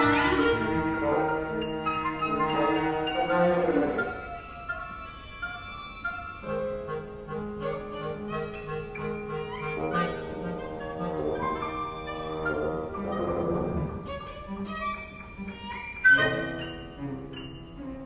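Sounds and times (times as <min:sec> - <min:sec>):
chamber ensemble with bowed strings: 0:00.0 - 0:18.0.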